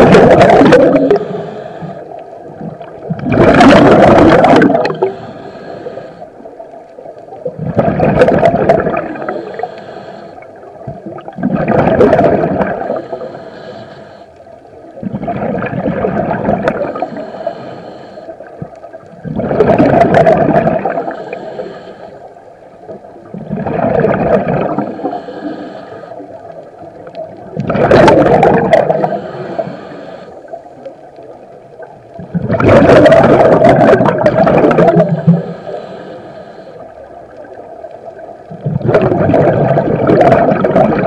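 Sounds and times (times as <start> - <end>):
diver exhaling bubbles: 0.0 - 1.6, 2.6 - 5.3, 7.5 - 9.7, 10.9 - 13.3, 15.0 - 17.5, 19.2 - 21.3, 23.3 - 25.6, 27.5 - 29.9, 32.2 - 35.8, 38.5 - 41.0
hissing inhalation through regulator: 0.7 - 2.6, 4.6 - 6.5, 9.0 - 10.8, 12.8 - 14.6, 16.8 - 18.8, 20.8 - 22.4, 24.7 - 26.6, 28.7 - 31.0, 34.1 - 36.9.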